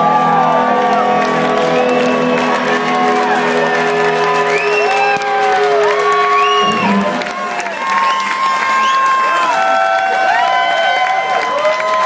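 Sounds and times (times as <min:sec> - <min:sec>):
bending electric guitar notes: 0:00.0 - 0:07.7
crowd cheering: 0:00.0 - 0:12.0.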